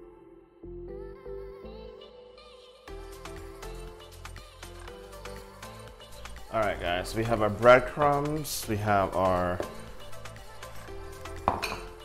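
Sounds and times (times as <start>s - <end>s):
background music: 0.0s - 12.0s
glass bowl clinking on wooden board: 11.5s - 11.9s.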